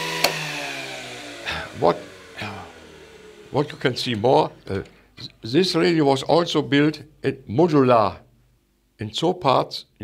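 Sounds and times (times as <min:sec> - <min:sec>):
electric motor humming: 0:00.0 - 0:05.0
switch clicking: 0:00.2 - 0:00.4.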